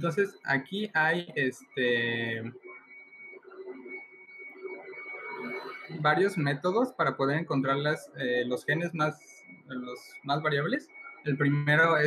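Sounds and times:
steady high-pitched tone: 0.0s - 12.0s.

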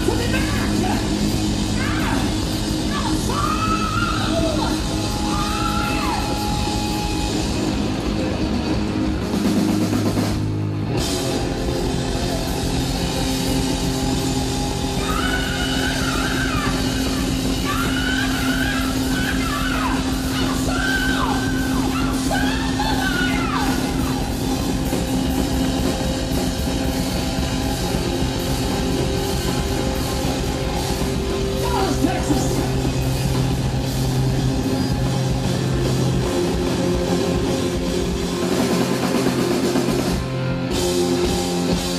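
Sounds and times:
rock band sustained note: 0.0s - 41.9s
high wailing lead line: 11.3s - 40.3s.

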